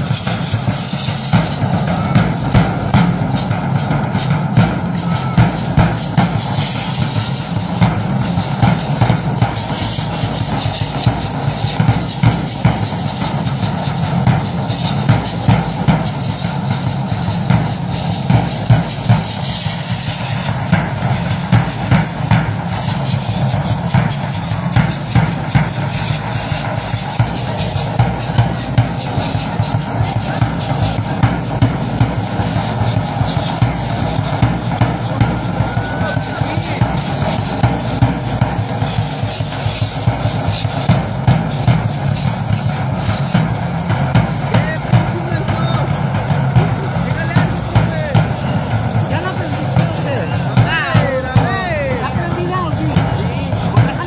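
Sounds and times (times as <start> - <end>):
drum beating fast rhythm: 0.0 - 54.0.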